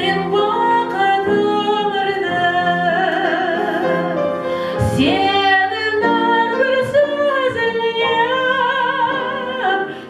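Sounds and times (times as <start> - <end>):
piano accompaniment: 0.0 - 10.0
woman singing into microphone: 0.0 - 10.0.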